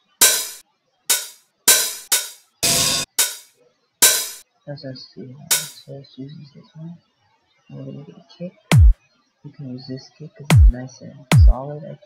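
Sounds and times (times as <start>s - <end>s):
open hi-hat hits: 0.0s - 4.4s, 5.5s - 5.8s.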